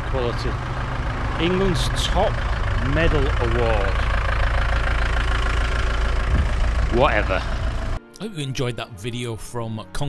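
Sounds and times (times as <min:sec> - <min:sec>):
van engine idling: 0:00.0 - 0:08.0.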